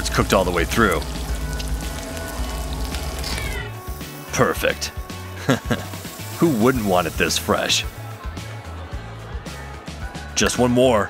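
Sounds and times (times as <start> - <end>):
sizzling crackling: 0.0 - 8.4
background music with bass: 0.0 - 11.0.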